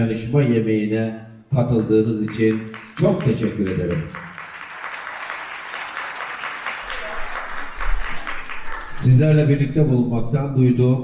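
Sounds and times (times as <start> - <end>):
audience applauding: 2.2 - 9.3.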